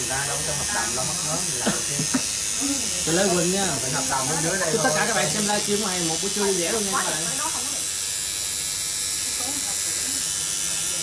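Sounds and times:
tattoo machine buzzing: 0.0s - 11.0s.

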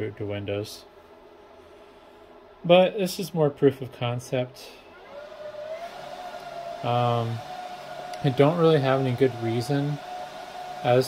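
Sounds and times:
server cooling fans whining: 0.0s - 11.0s.

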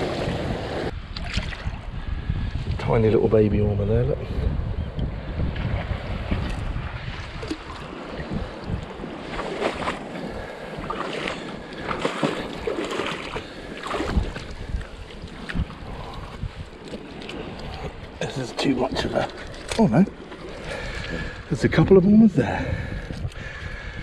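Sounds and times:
water sloshing around rocks: 0.0s - 1.9s, 6.6s - 21.9s
wind buffeting microphone: 0.0s - 24.0s.

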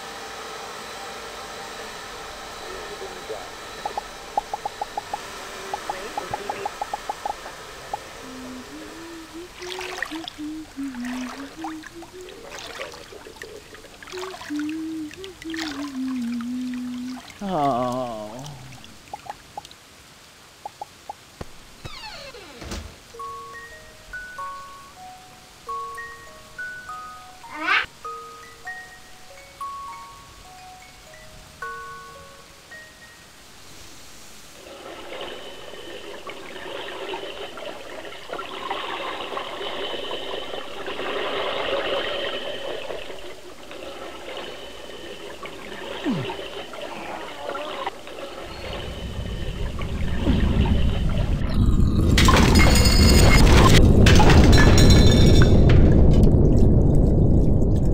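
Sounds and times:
water running and trickling: 3.2s - 21.3s, 34.5s - 52.4s
water drips plinking: 18.4s - 19.8s, 20.6s - 21.2s
low rumble: 47.9s - 57.9s.

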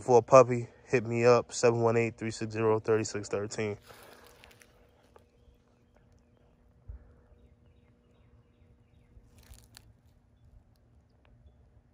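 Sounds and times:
faint crackles: 3.6s - 7.2s, 9.1s - 11.4s.

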